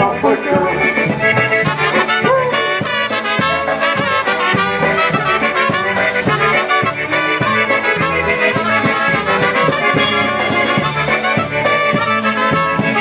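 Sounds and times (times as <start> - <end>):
accordion: 0.0 - 13.0
steady beat: 0.0 - 13.0
trumpets playing tune: 0.0 - 13.0.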